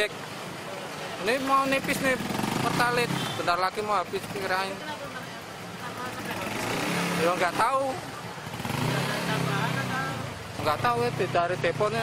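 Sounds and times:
vehicle engines humming: 0.0 - 12.0.

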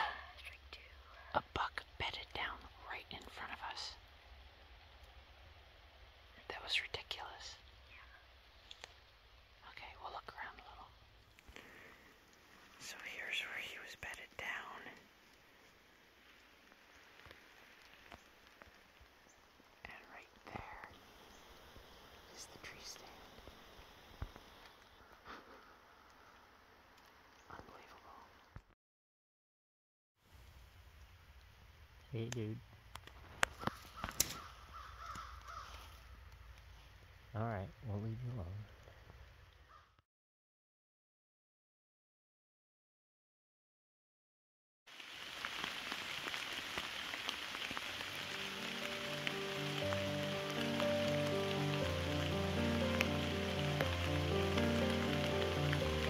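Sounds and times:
person whispering: 0.0 - 4.0, 6.4 - 8.2, 9.6 - 11.0, 12.8 - 15.1, 19.8 - 21.0, 22.3 - 23.4, 27.5 - 28.5.

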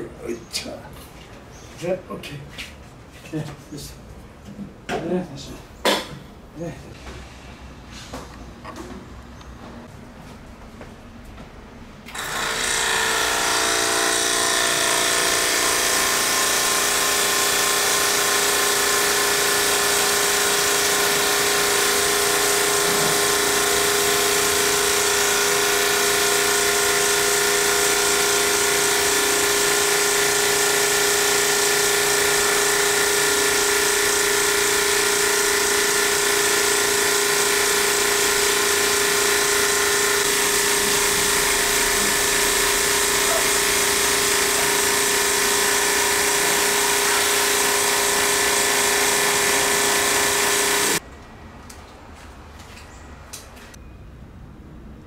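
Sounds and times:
pressure washer motor hum: 12.1 - 51.0.

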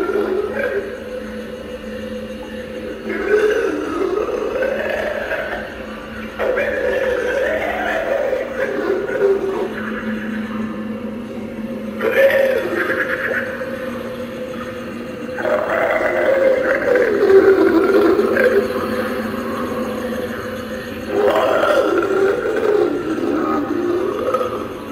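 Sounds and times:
zombie growls and moans: 0.0 - 24.9.

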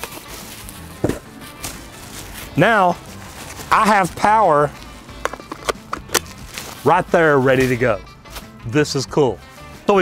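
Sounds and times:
bubble wrap rustling: 0.0 - 4.9, 6.2 - 8.5
quiet background music: 0.0 - 10.0
handling knocks: 1.0 - 1.3.

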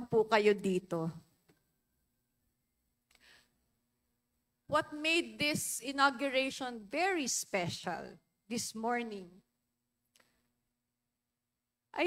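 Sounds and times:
faint short breath: 3.1 - 3.6.

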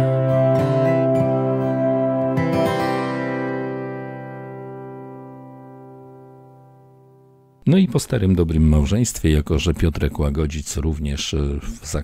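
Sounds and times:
guitar chord ringing out: 0.0 - 7.6.

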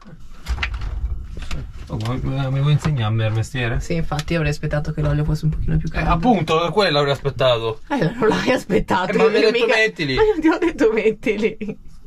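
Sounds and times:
low rumble: 0.4 - 6.2.

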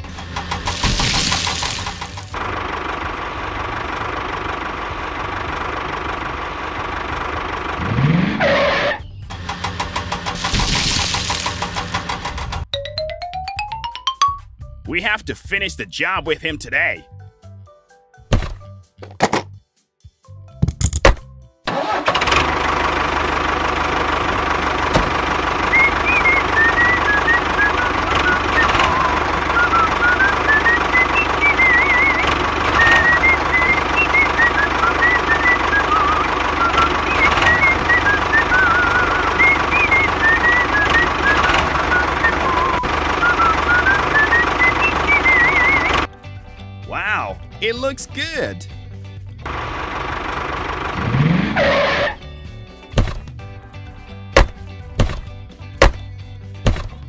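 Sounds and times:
engine-like drone: 0.0 - 12.7, 22.0 - 46.1, 49.4 - 52.5
background music melody: 12.7 - 20.6, 33.4 - 49.0.

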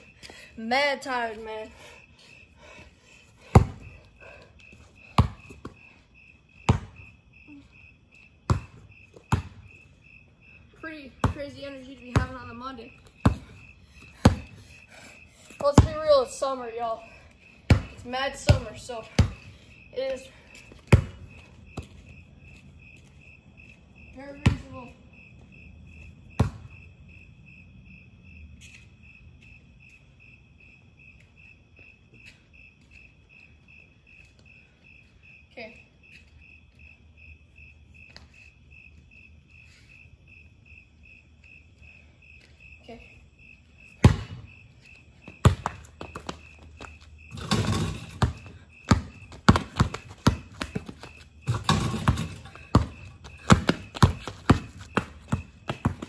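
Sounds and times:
crickets chirping: 0.0 - 56.0
basketball bouncing on pavement: 3.4 - 7.1, 8.4 - 10.2, 10.8 - 14.8, 15.4 - 27.0, 43.8 - 56.0.

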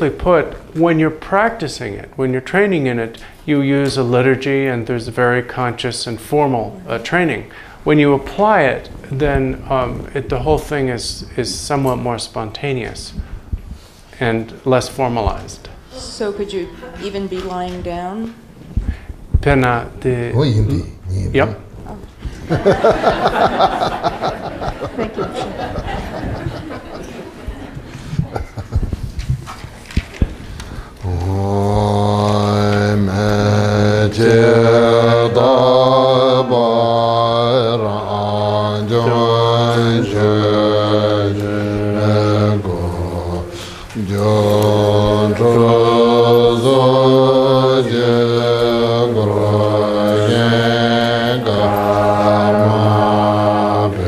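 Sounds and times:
microphone handling thumps: 8.9 - 11.4, 13.1 - 14.1, 17.0 - 23.4, 25.7 - 26.8, 27.5 - 32.9
low male voice chanting: 20.2 - 21.6, 31.0 - 50.8.

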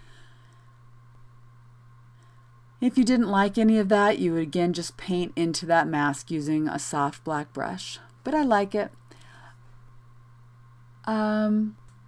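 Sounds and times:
faint breath: 0.0 - 0.8, 9.1 - 9.8
low electrical hum: 0.0 - 12.0.

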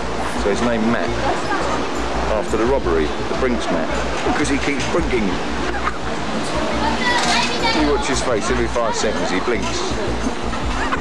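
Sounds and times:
people talking: 0.4 - 11.0.

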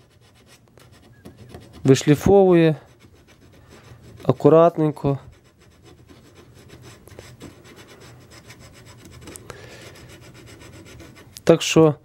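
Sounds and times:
sandpaper scratching on wood: 0.0 - 11.4.

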